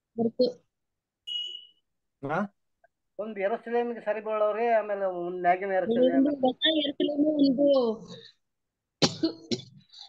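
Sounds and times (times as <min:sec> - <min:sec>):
person coughing: 0:09.0 - 0:09.9.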